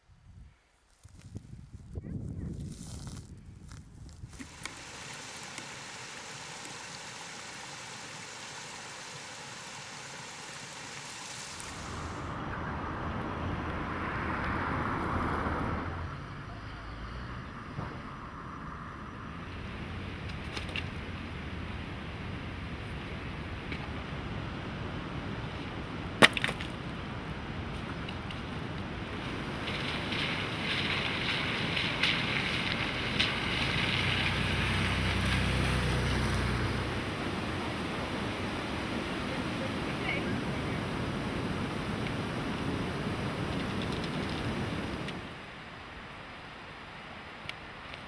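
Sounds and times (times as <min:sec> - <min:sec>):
steady outdoor hiss: 0:02.1 - 0:48.0.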